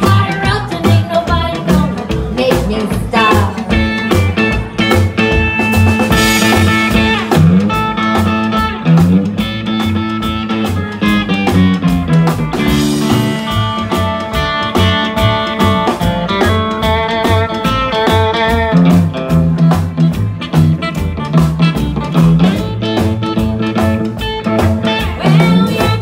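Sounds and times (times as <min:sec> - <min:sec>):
bass line: 0:00.0 - 0:26.0
electric guitar lead: 0:00.0 - 0:26.0
steady drum beat: 0:00.0 - 0:26.0.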